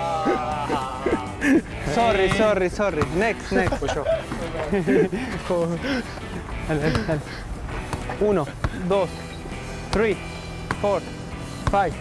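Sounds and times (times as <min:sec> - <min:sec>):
person shouting: 0:00.0 - 0:01.6.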